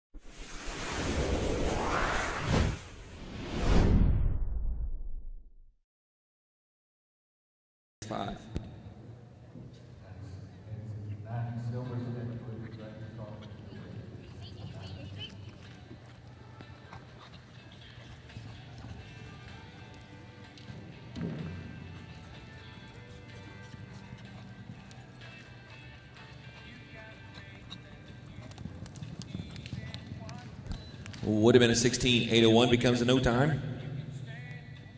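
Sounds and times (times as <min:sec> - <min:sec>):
rushing whoosh: 0:00.2 - 0:04.9
background music: 0:11.2 - 0:34.9
horse hoofbeats on dirt: 0:13.4 - 0:31.4.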